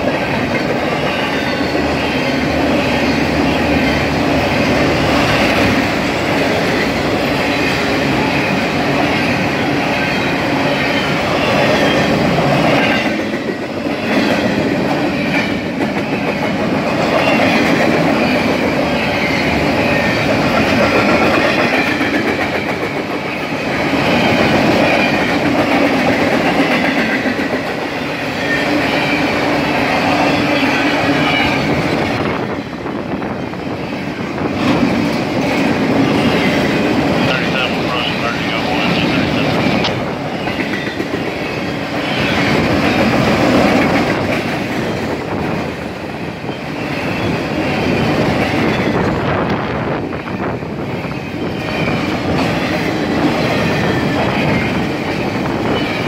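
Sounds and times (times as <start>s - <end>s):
freight train wheels rumbling: 0.0s - 56.0s.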